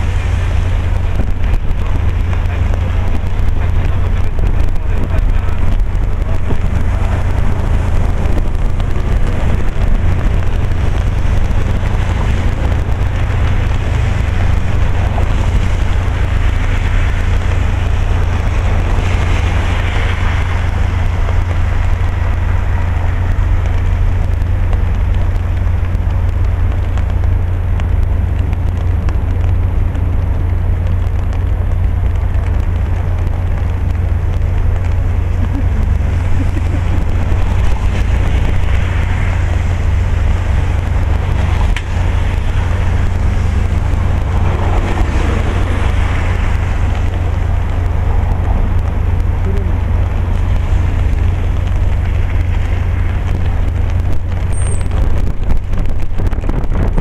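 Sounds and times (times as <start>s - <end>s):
passing road traffic: 0.0s - 57.0s
rain: 0.0s - 57.0s
wind rumble on microphone: 0.0s - 57.0s.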